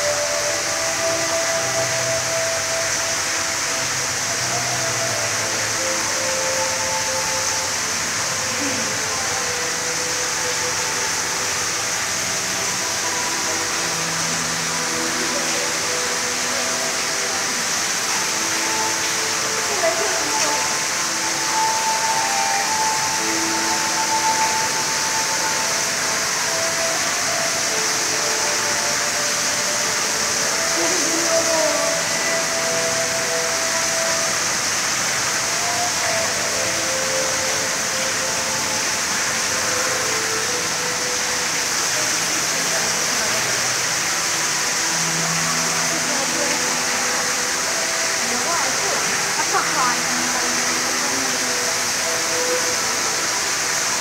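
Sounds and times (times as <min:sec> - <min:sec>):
steady hiss: 0:00.0 - 0:54.0
indistinct visitors' voices: 0:00.1 - 0:54.0.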